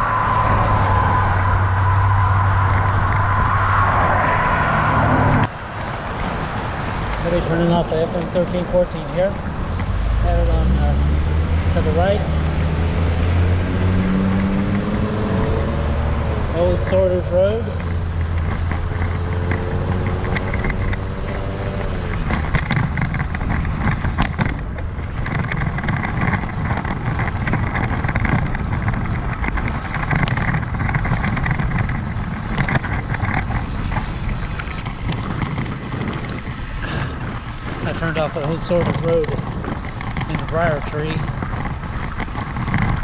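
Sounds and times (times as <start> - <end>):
tyre and road noise: 0.0 - 43.0
vehicle engine humming: 0.0 - 43.0
wind rushing over microphone: 0.0 - 43.0.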